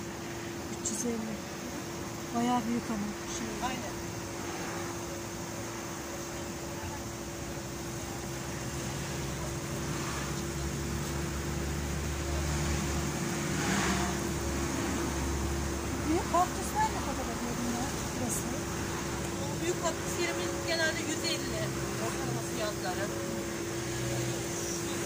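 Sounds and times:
low engine rumble: 0.0s - 25.0s
steady background hum: 0.0s - 25.0s.

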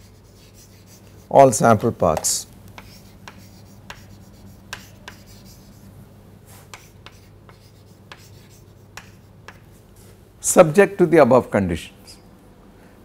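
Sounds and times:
chalk tapping and scratching on chalkboard: 0.0s - 5.9s, 6.5s - 9.8s
faint low hum: 0.0s - 13.0s.

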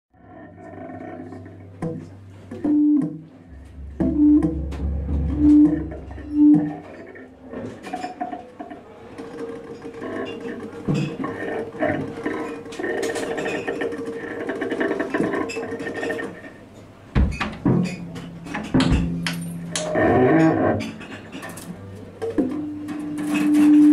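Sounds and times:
double bass: 0.2s - 8.2s, 17.2s - 22.9s
drums rattling and scraping: 0.3s - 16.6s, 17.2s - 23.9s
drums: 1.7s - 6.9s, 17.2s - 20.0s.

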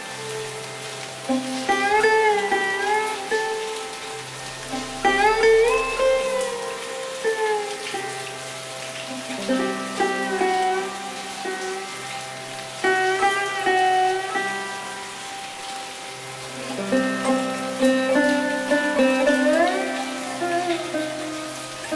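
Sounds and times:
slow sitar music: 0.0s - 21.9s
steady rain: 0.0s - 21.9s
low drone: 4.2s - 6.8s.

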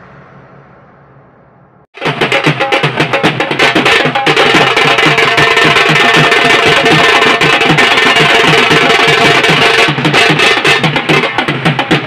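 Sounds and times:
band playing fast drumming: 2.0s - 12.0s.

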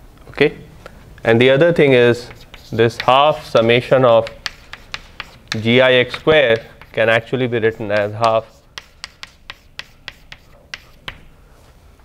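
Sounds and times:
chalk tapping on blackboard: 2.2s - 11.3s.

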